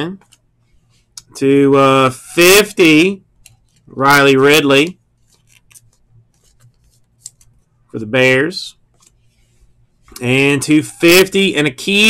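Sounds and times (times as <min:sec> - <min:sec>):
trading card ticks and rubbing: 0:00.2 - 0:01.4, 0:03.3 - 0:04.0, 0:05.0 - 0:07.7, 0:08.9 - 0:11.0.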